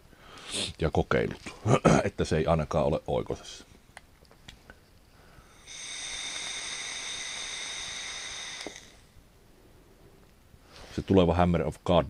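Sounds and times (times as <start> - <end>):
electronic cigarette hiss: 0.3 - 0.8, 5.3 - 9.4.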